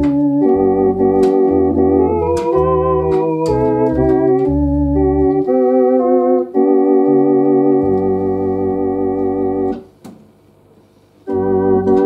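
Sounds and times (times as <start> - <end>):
electronic organ playing chords: 0.0 - 10.0, 11.2 - 12.0.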